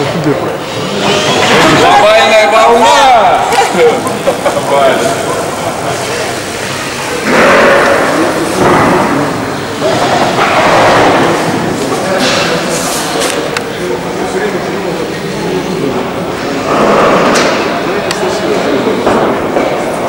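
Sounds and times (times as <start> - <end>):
people exclaiming loudly: 0.9 - 6.5
people laughing: 3.4 - 6.8.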